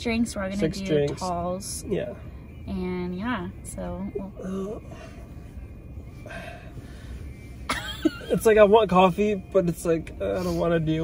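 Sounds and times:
loud laugh or cough: 0:07.7 - 0:08.4.

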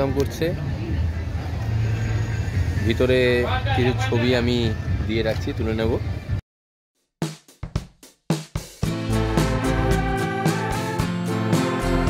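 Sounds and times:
vehicle engine: 0:00.0 - 0:05.0
road traffic rumble: 0:00.0 - 0:06.4.

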